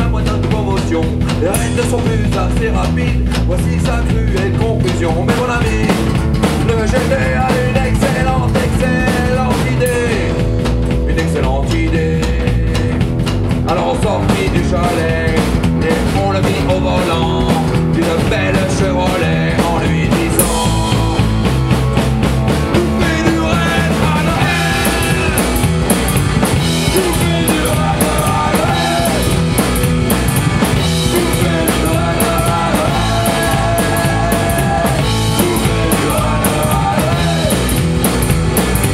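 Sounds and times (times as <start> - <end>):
electric guitar with bending notes: 0.0 - 38.9
rockabilly band playing: 0.0 - 38.9
upright double bass: 0.0 - 38.9.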